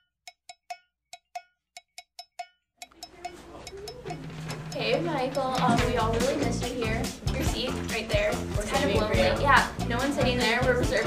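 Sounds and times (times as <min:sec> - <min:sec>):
cowbell-like percussion hits: 0:00.3 - 0:11.0
classroom hum: 0:02.9 - 0:10.2
faint classroom chatter: 0:02.9 - 0:11.0.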